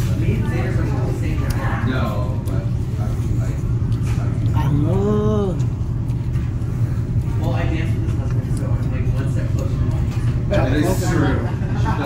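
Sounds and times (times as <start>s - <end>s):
steady low rumble: 0.0s - 10.5s.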